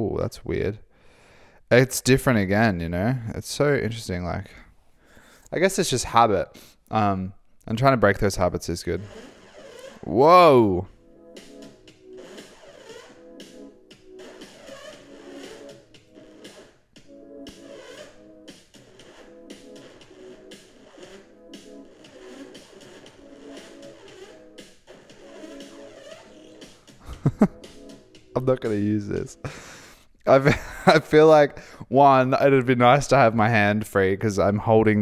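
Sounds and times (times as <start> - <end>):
quiet electronic music loop: 7.7 - 31.5.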